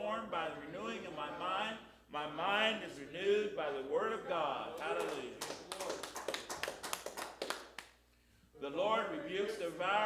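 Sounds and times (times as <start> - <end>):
people clapping: 4.8 - 8.0.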